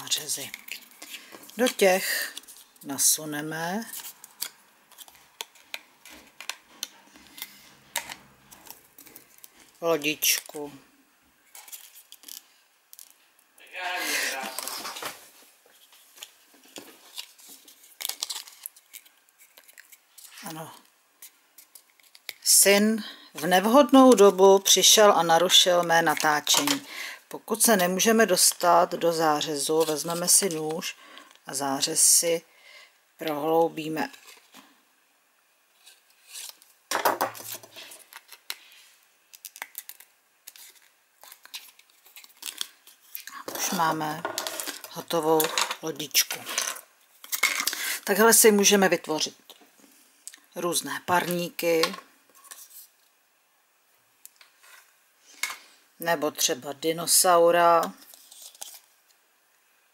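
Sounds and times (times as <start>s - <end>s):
person speaking: 0.0s - 0.7s, 1.5s - 4.0s, 9.8s - 10.9s, 13.6s - 15.0s, 20.3s - 20.9s, 22.4s - 32.5s, 33.2s - 34.2s, 43.3s - 46.8s, 47.8s - 49.5s, 50.5s - 52.1s, 56.0s - 58.0s.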